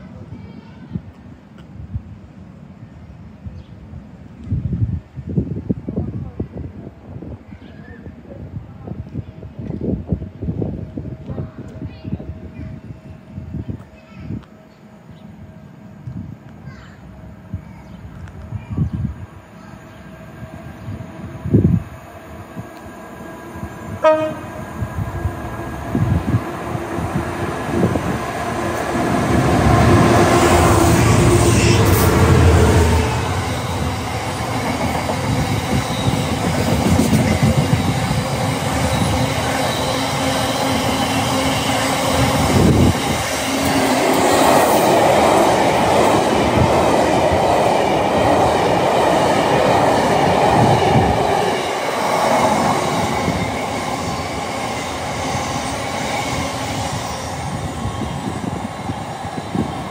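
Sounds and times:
diesel locomotive engine: 8.1 - 59.9
train wheels rumbling: 9.0 - 59.9.

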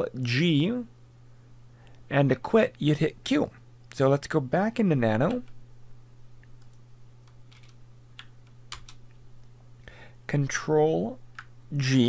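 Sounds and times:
low steady hum: 0.0 - 12.0
computer keyboard keystrokes: 6.6 - 9.0.

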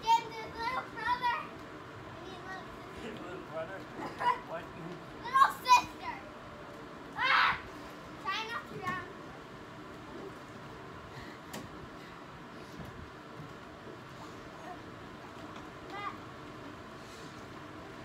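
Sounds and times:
young people shouting and squealing: 7.1 - 7.7.

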